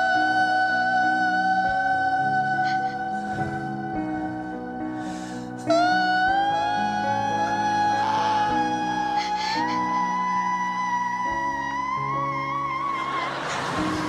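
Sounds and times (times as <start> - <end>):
man singing a long high note: 0.0 - 14.0
piano chords: 0.0 - 14.0.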